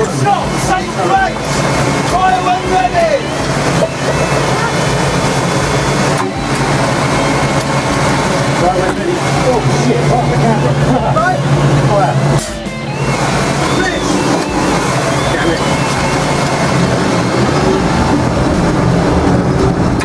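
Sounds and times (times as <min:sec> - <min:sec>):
indistinct voices: 0:00.0 - 0:20.0
tank engine droning: 0:00.0 - 0:20.0.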